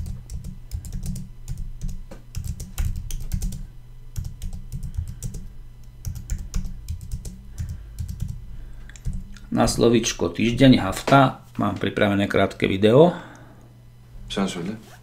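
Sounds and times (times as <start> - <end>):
typing on computer keyboard: 0.0 - 3.6, 4.2 - 9.2.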